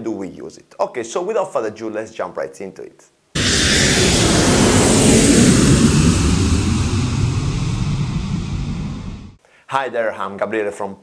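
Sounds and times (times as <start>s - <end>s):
jet engines roaring past: 3.4s - 9.4s.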